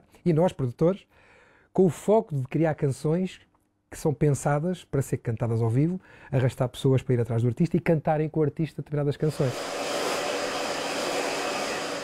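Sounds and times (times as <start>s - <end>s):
hair dryer blowing: 9.2s - 12.0s.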